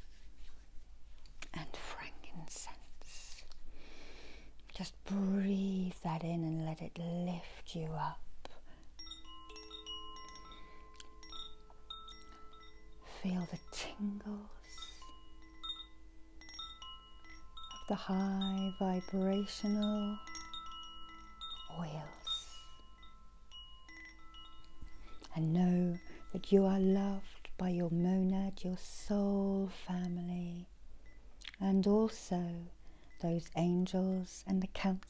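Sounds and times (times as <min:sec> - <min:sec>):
soft chime-like background music: 0:09.0 - 0:27.6.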